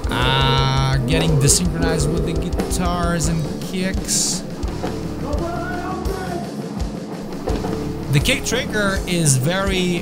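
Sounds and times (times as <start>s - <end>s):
metal band playing: 0.0s - 7.0s.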